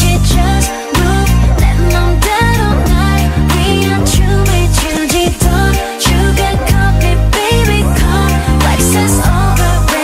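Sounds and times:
electric bass notes: 0.0 - 9.9
steady beat: 0.0 - 10.0.

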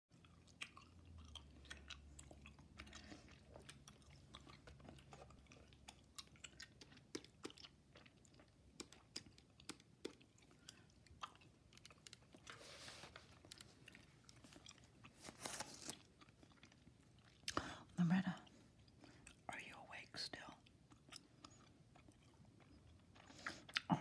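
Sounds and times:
gum chewing: 0.1 - 19.6, 20.4 - 24.0.

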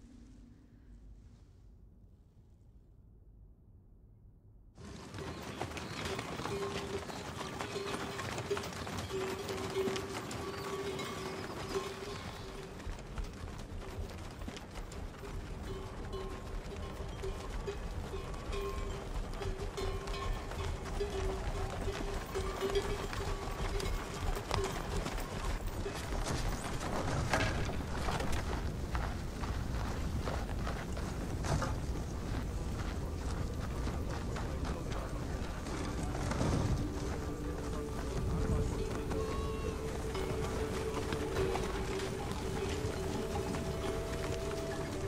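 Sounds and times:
film music with long held note: 4.8 - 45.0
hoofbeats: 4.8 - 45.0
running footsteps: 4.8 - 45.0.

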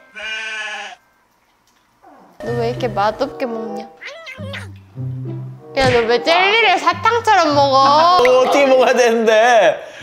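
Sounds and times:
sheep bleat: 0.0 - 1.0.

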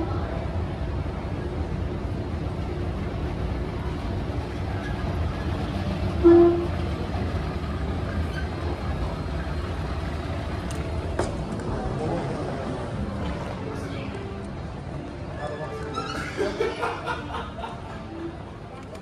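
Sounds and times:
escalator rumble: 0.0 - 19.0.

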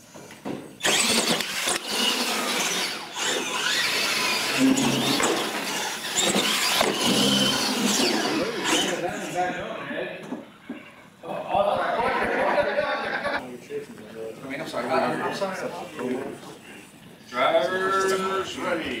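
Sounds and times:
toy truck motors whining: 0.8 - 9.5
tyres squealing: 2.0 - 9.3.

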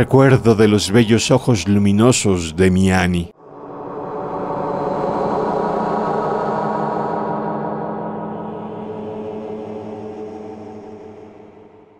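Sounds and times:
gong-like ambient drone: 3.4 - 11.9.

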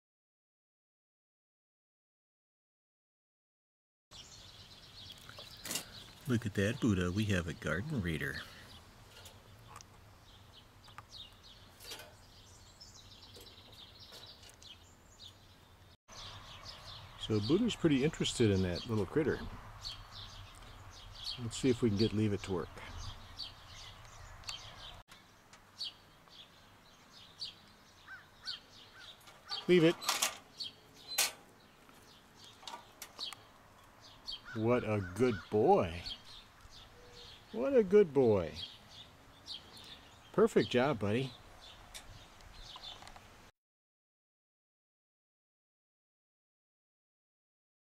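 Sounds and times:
small birds chirping: 4.1 - 43.5.

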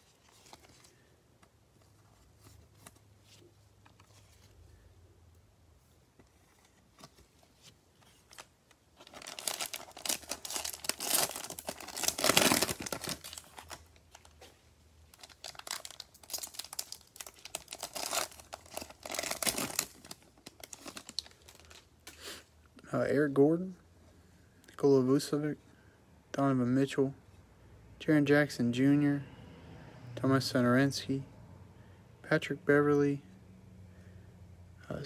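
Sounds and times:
cellophane wrapper crinkling: 8.0 - 14.5, 15.1 - 22.2.

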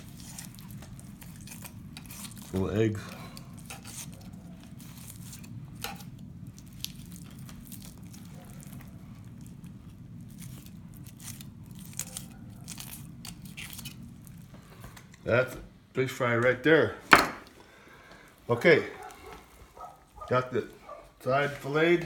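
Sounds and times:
knife slicing along fish bones: 0.0 - 2.6.

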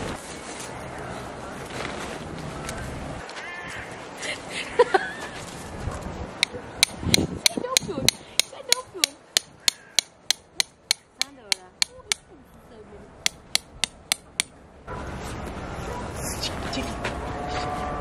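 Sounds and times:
hammer striking tent stake: 6.4 - 12.2, 13.2 - 14.5.

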